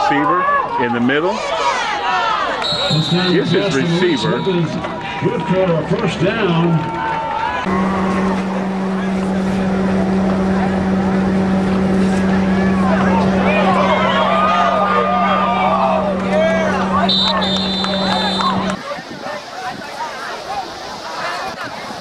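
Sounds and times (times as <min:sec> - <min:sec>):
crowd and players shouting: 0:00.0 - 0:22.0
referee's whistle: 0:02.6 - 0:04.8, 0:16.8 - 0:18.8
steady electrical hum: 0:07.6 - 0:18.8
quiet field noise: 0:07.7 - 0:18.8.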